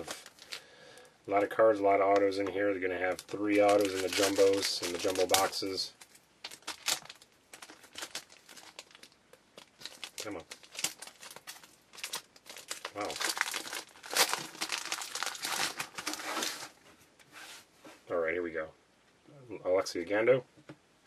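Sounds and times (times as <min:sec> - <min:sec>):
foil wrapper crinkling and tearing: 0:00.0 - 0:00.7, 0:03.0 - 0:16.8.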